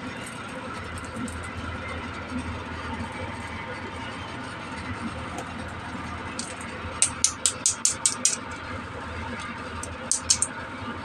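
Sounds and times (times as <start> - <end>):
steady low hum: 0.0 - 11.0
plastic toy clicks: 7.0 - 8.4, 10.1 - 10.5.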